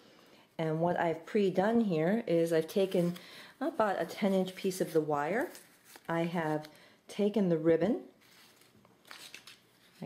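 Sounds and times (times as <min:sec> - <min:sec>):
ribbon rustling: 0:02.6 - 0:06.7, 0:08.2 - 0:10.0.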